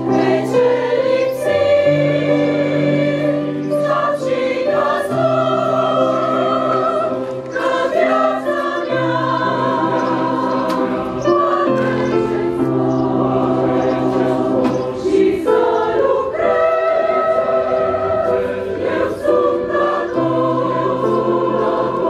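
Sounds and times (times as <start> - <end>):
choir singing a slow hymn: 0.0 - 22.0.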